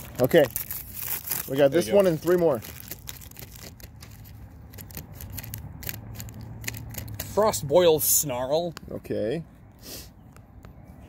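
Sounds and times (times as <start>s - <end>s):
foil wrapper crinkling: 0.0s - 7.6s.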